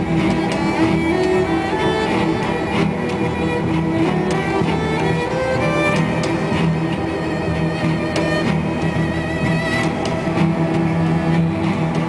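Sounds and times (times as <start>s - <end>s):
cellos and double basses playing: 0.0s - 12.0s.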